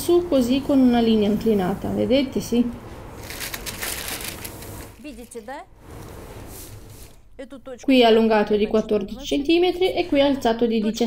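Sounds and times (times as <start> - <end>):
tissue paper rustling: 3.2 - 5.5.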